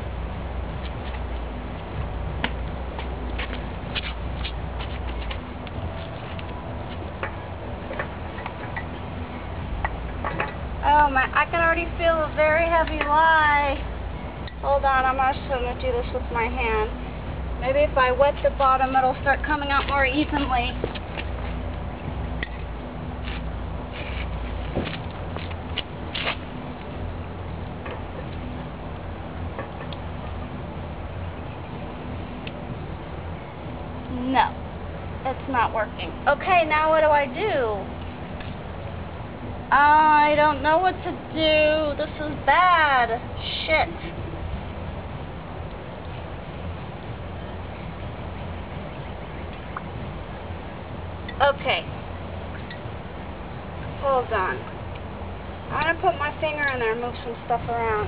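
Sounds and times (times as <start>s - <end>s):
low wind rumble: 0.0s - 58.0s.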